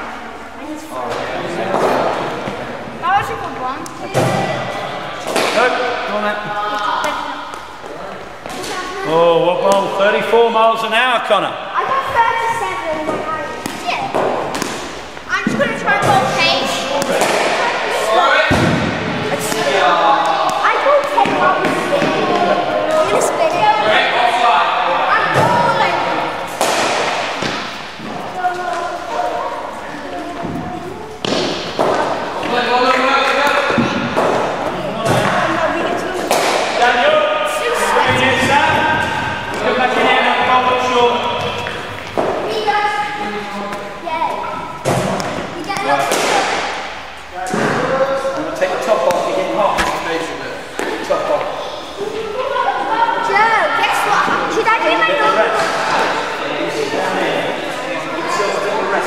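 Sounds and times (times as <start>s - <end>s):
voices echoing in hall: 0.0s - 59.0s.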